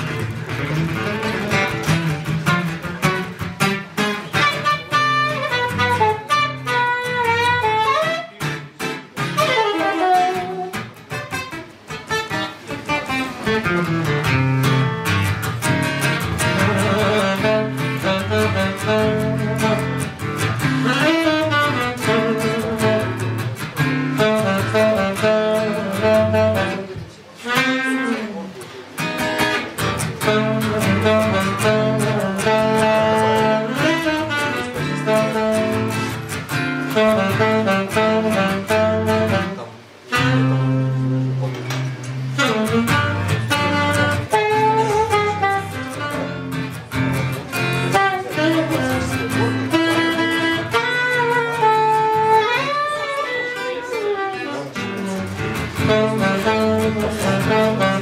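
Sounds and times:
acoustic guitar chords: 0.0s - 58.0s
saxophone melody: 0.0s - 58.0s.

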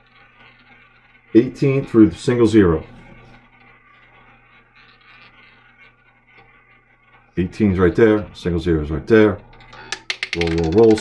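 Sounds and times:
roulette ball rolling: 0.0s - 11.0s.

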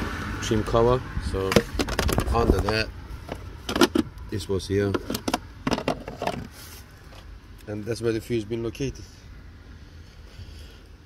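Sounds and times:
plastic cover clicks and scrapes: 1.5s - 4.1s.

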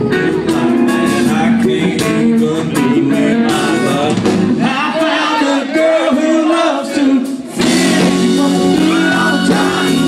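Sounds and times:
live country band playing: 0.0s - 10.0s
man singing: 0.4s - 10.0s.

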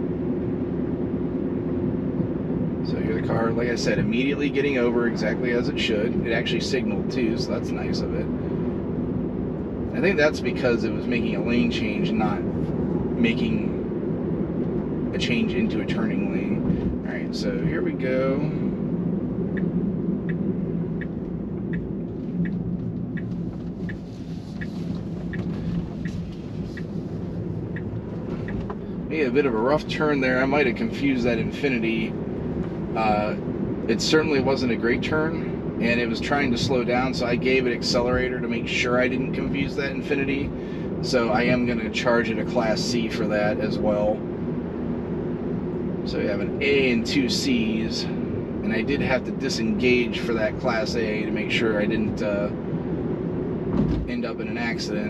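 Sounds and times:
road and tyre rumble in car: 0.0s - 55.0s
turn signal ticking: 18.8s - 29.9s.

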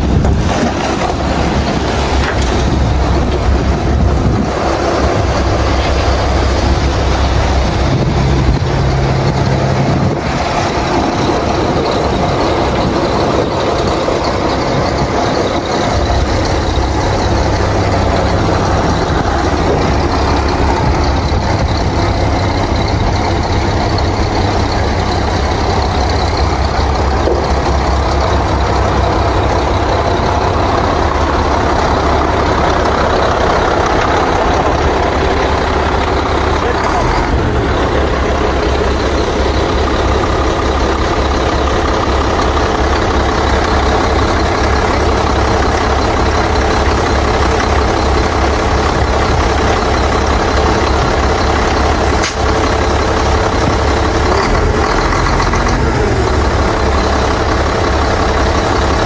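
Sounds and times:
dump truck diesel engine under load: 0.0s - 59.0s.

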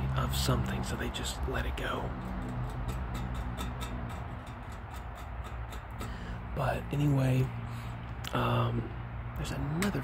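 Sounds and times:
road traffic hum: 0.0s - 10.0s
fast high-pitched ticking: 2.0s - 6.6s.

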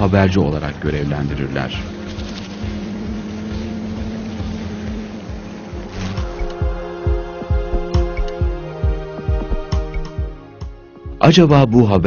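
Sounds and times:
even hiss: 0.0s - 8.4s
low droning hum: 0.0s - 10.4s.

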